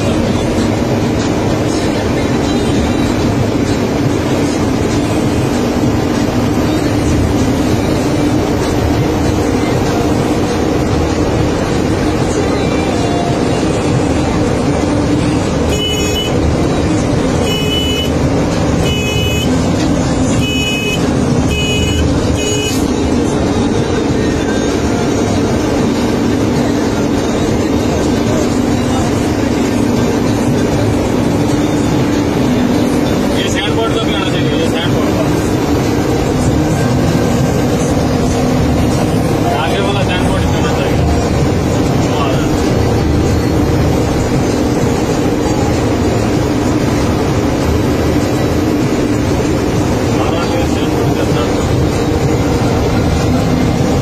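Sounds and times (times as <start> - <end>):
engine and road noise drone: 0.0 - 54.0
short high-pitched tones: 15.7 - 16.4, 17.4 - 18.2, 18.8 - 19.6, 20.4 - 22.9.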